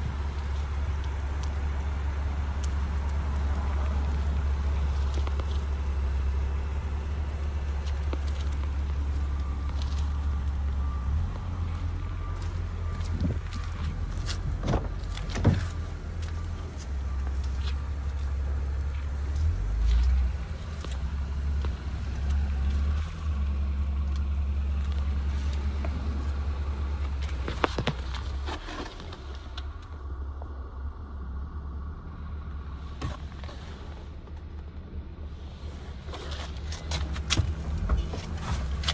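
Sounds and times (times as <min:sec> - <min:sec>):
car engine idling: 0:00.0 - 0:38.9.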